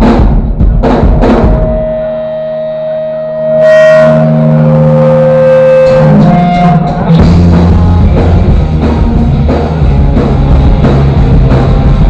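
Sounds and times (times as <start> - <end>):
electric guitars sustained notes: 1.4 - 12.0.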